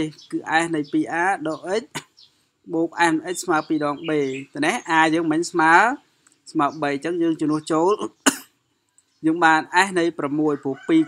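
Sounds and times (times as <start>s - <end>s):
man speaking: 0.0s - 2.0s, 2.7s - 8.3s, 9.2s - 11.0s
man coughing: 8.2s - 8.6s.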